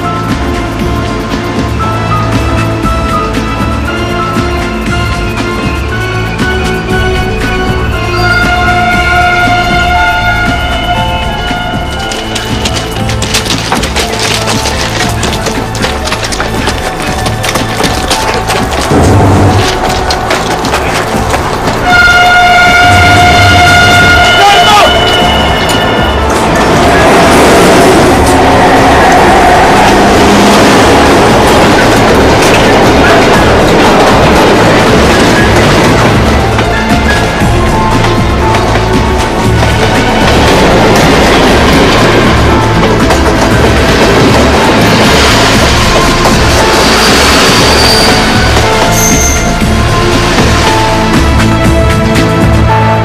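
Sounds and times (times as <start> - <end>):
passing train rushing: 0.0 - 53.0
tense film score: 0.0 - 53.0
train horn blast: 5.1 - 12.5, 19.0 - 53.0.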